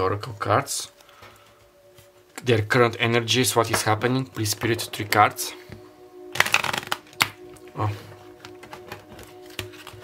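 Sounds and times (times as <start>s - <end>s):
cards riffle-shuffled: 6.3s - 7.4s, 8.4s - 10.0s.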